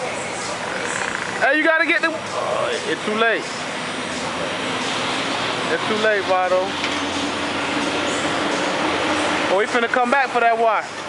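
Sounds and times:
vehicle noise hiss and hum: 0:00.0 - 0:11.0.

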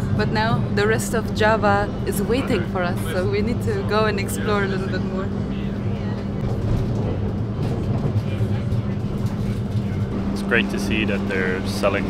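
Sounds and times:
constant low hum: 0:00.0 - 0:12.0
train carriage rumble: 0:00.0 - 0:12.0.

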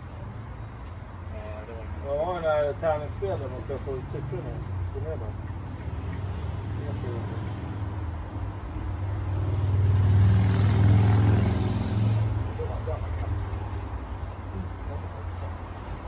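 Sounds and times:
vehicle engine passing by: 0:02.1 - 0:16.0.

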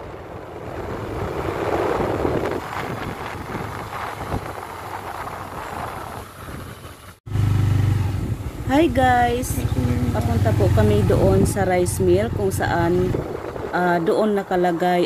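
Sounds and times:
wind rushing over microphone: 0:00.0 - 0:07.2, 0:08.0 - 0:15.0
motorcycle engine: 0:00.0 - 0:13.8
road noise: 0:00.0 - 0:15.0.

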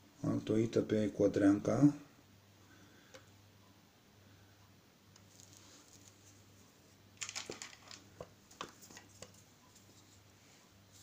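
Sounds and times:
handling crinkles and clicks: 0:05.2 - 0:06.2, 0:07.2 - 0:09.4.

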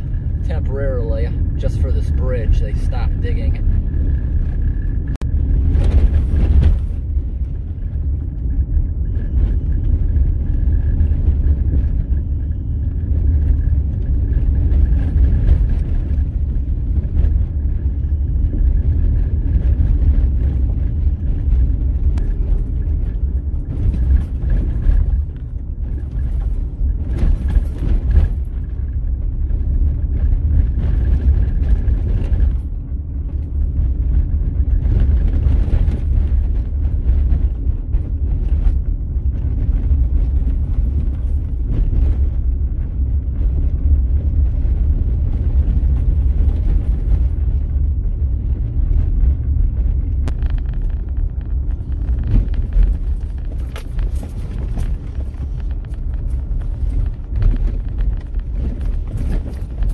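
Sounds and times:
vehicle driving on gravel: 0:00.0 - 0:59.9.

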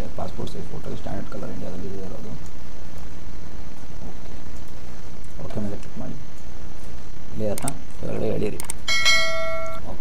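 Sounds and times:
bright bell ding: 0:08.9 - 0:10.0.

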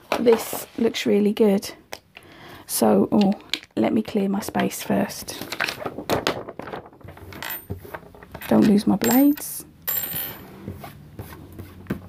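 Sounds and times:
paper rustling: 0:05.4 - 0:08.0.

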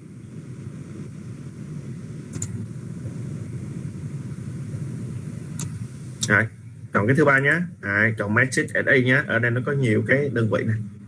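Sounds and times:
low background rumble: 0:00.0 - 0:11.0
short clicks: 0:02.3 - 0:02.6.

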